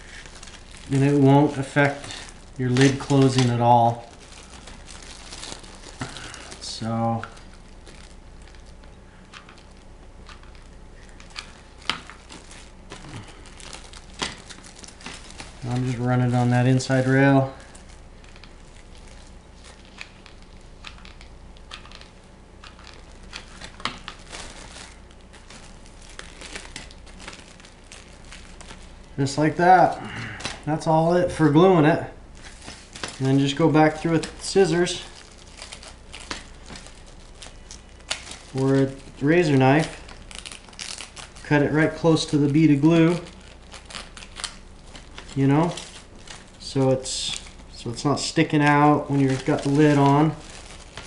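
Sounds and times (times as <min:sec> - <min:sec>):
plastic wrap crinkling: 0:00.0 - 0:51.0.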